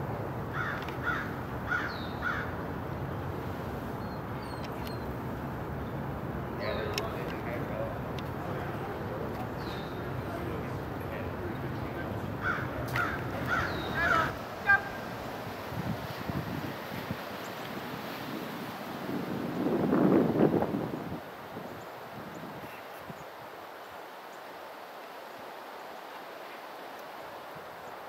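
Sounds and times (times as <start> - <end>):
street traffic rumble: 0.0 - 21.1
crow cawing: 0.5 - 2.6, 12.4 - 15.0.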